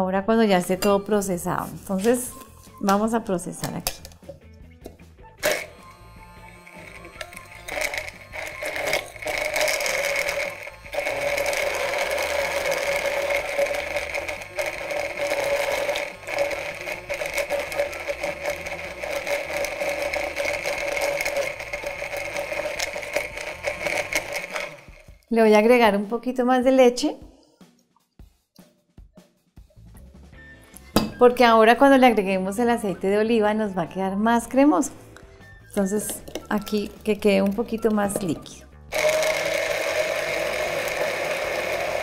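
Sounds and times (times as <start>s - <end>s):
immersion blender motor whine: 0.6s - 2.8s, 5.4s - 25.3s, 38.9s - 42.0s.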